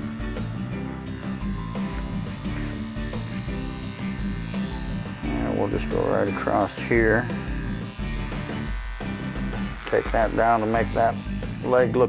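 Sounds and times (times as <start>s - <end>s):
background music: 0.0s - 12.0s
electric hair clippers buzzing: 0.0s - 12.0s.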